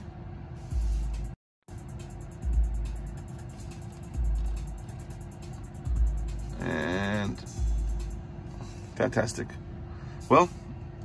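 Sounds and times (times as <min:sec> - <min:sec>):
electronic drum loop with synth bass: 0:00.7 - 0:08.2.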